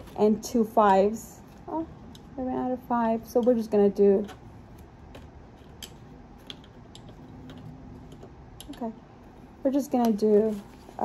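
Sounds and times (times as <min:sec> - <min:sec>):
fingernails clicking on plastic: 0:03.4 - 0:09.0
fingernails tapping banknotes: 0:03.4 - 0:09.0.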